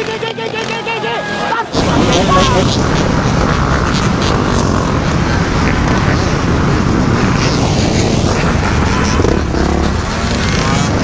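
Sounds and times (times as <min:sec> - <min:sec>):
dirt bike engines running: 0:00.0 - 0:11.0
wind rumble on microphone: 0:01.8 - 0:11.0.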